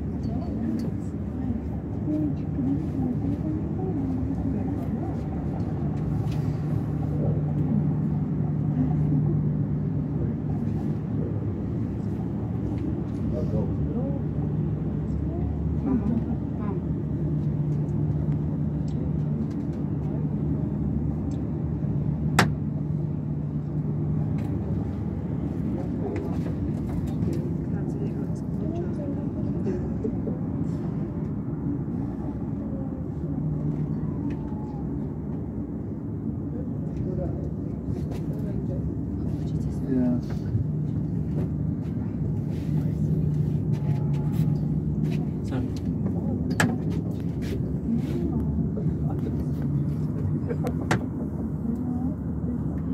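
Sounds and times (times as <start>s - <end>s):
gondola rumble and hum: 0.0s - 52.9s.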